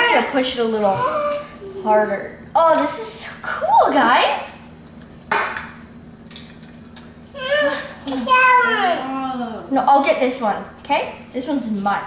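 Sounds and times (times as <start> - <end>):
child's high-pitched voice: 7.4 - 9.5.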